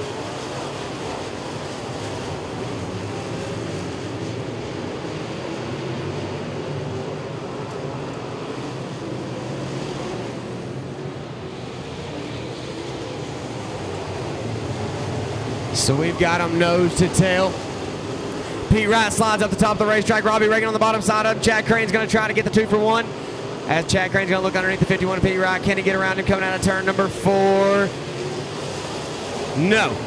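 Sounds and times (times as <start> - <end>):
race car engines at speed: 0.0 - 30.0.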